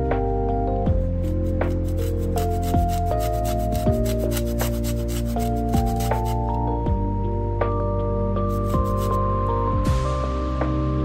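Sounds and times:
lemon zest grated on metal grater: 1.2 - 6.4, 8.5 - 9.2.

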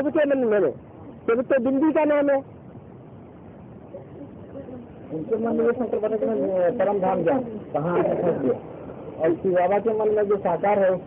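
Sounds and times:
man talking: 5.1 - 11.0.

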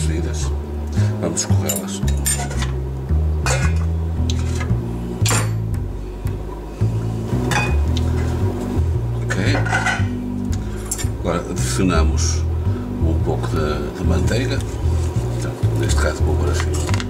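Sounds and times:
pot and lid clinking: 1.7 - 2.8, 3.4 - 5.6, 7.5 - 7.8, 9.6 - 10.2.

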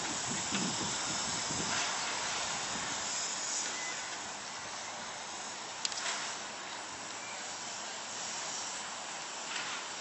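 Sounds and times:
steam locomotive hissing: 0.0 - 10.0.

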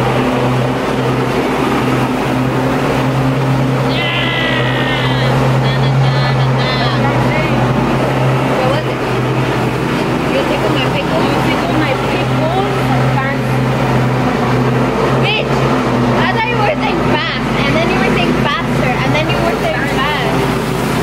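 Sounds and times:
lawn mower engine droning: 0.0 - 21.0
person speaking: 3.8 - 9.1.

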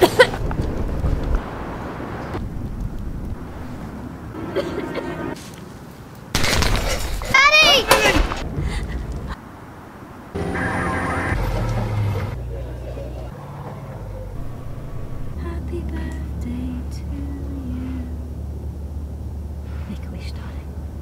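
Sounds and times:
low rumble: 0.4 - 5.4, 11.3 - 21.0.

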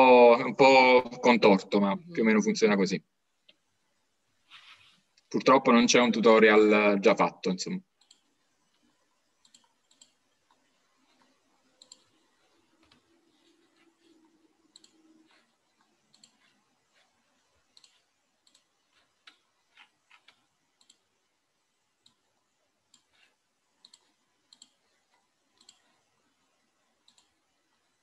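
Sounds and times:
keyboard and mouse clicks: 7.9 - 16.6, 17.6 - 21.3, 22.0 - 26.1, 27.0 - 27.5.

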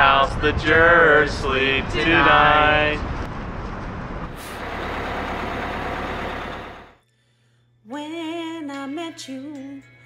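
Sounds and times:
heavy vehicle engine rumbling: 0.9 - 7.0.

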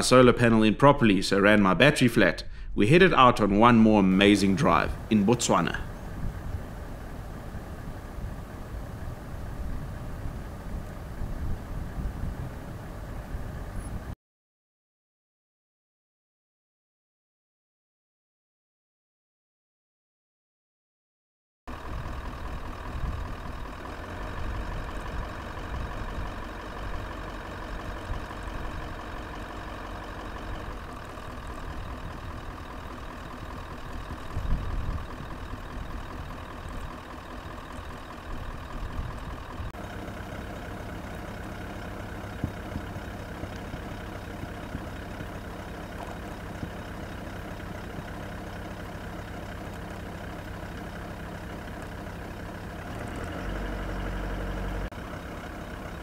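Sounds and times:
car engine idling: 4.0 - 14.2, 21.7 - 56.0.

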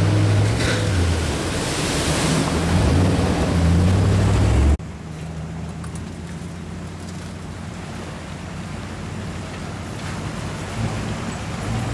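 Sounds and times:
water splashing and churning: 0.0 - 11.9.

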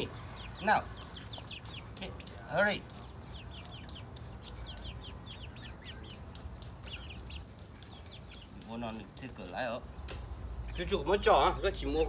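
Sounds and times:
chicks peeping: 0.0 - 9.9.

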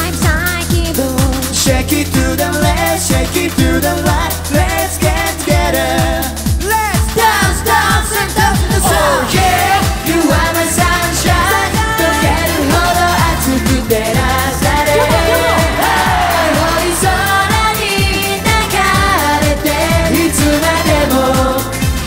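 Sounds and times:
upbeat pop song with vocals: 0.0 - 22.0.

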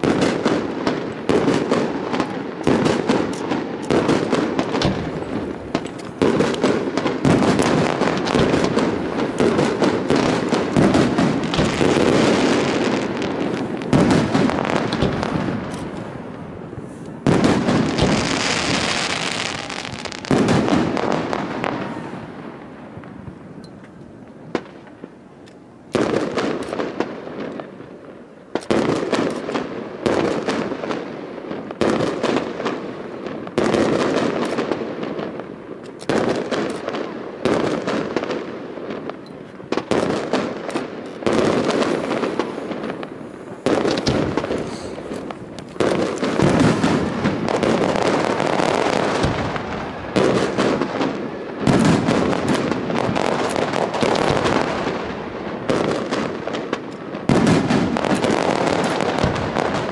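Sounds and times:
firework shells bursting: 0.0 - 21.9, 28.5 - 59.9.

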